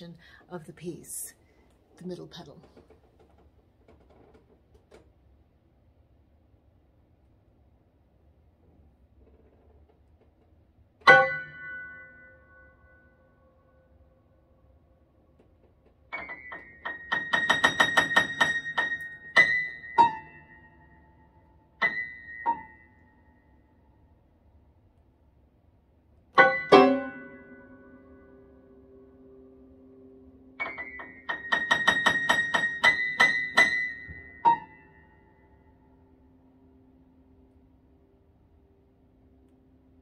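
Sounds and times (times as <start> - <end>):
solo grand piano: 11.0 - 14.1, 16.0 - 23.5, 26.3 - 36.2.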